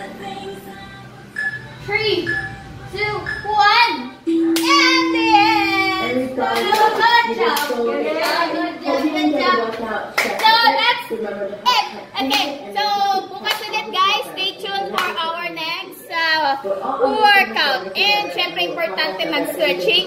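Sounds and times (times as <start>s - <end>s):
women shouting and singing: 1.8s - 9.7s
hand claps: 4.5s - 4.8s, 6.5s - 8.4s.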